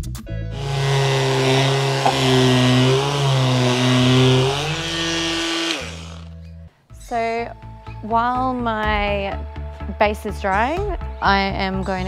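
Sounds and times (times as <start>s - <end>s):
background music: 0.0s - 12.0s
hand sander on wood: 0.6s - 6.3s.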